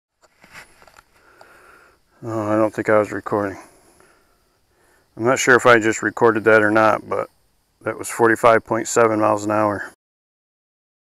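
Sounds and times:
faint rustling: 0:00.2 - 0:01.9.

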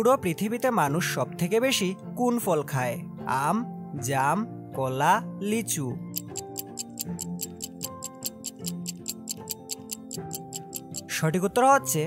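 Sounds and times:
soft background music: 0:00.0 - 0:12.0
stopwatch ticking: 0:06.1 - 0:11.1.

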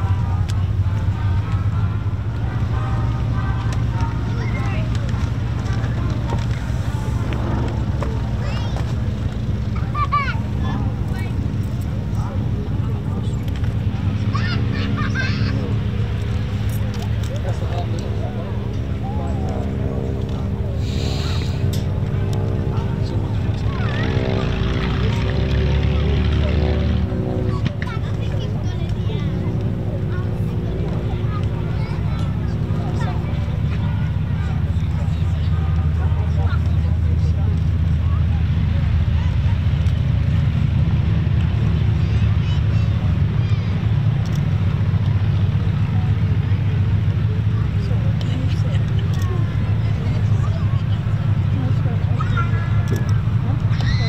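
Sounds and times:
aircraft piston engines droning: 0:00.0 - 0:54.0.

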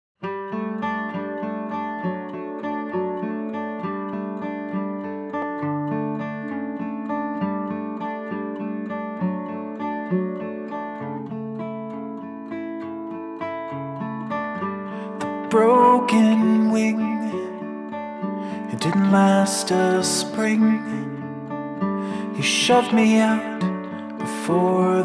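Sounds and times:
acoustic guitar picking: 0:00.2 - 0:25.0.

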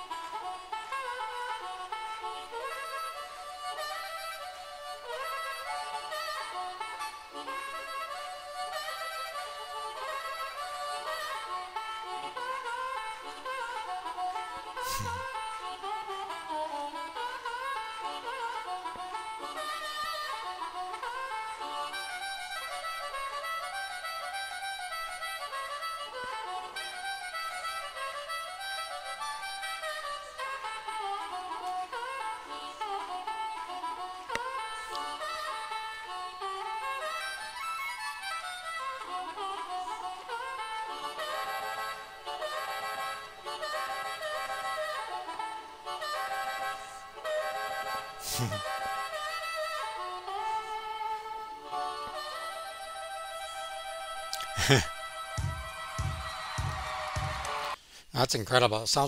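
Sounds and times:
harmonica solo: 0:00.0 - 0:58.7.

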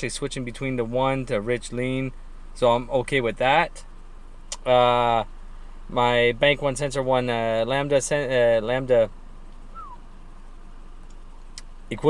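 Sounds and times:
car engine idling: 0:00.0 - 0:12.0
short falling chirp: 0:09.7 - 0:10.0.

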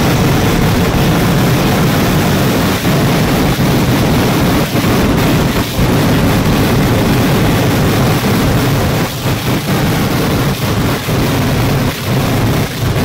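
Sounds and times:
fireworks detonations: 0:00.0 - 0:13.0.

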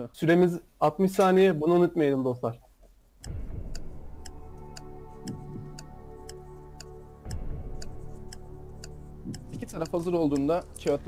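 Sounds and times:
clock ticking: 0:03.2 - 0:11.0
low sustained music: 0:03.2 - 0:11.0.

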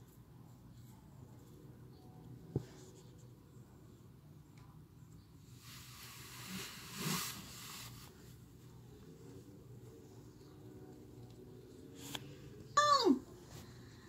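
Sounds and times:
low steady hum: 0:00.0 - 0:14.0.

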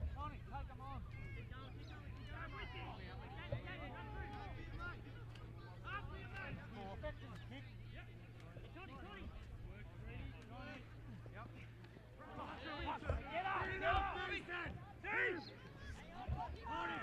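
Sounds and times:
distant shouts and calls: 0:12.2 - 0:17.0.

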